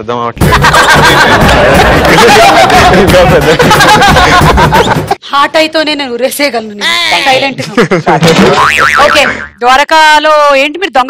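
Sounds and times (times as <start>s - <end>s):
springy boing sound effect: 8.4s - 9.6s.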